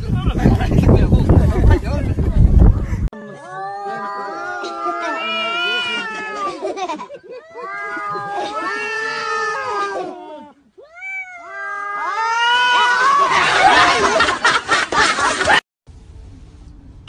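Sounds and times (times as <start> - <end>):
cat yowling: 3.4 - 6.6, 7.4 - 13.3.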